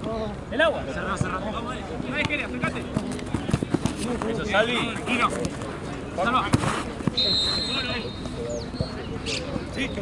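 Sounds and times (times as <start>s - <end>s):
high whistle tone: 7.2s - 8.2s.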